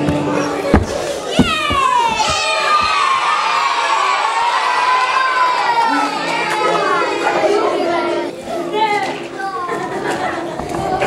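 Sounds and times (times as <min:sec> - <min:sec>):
knocks: 0:00.0 - 0:03.2
children shouting and cheering: 0:00.0 - 0:11.0.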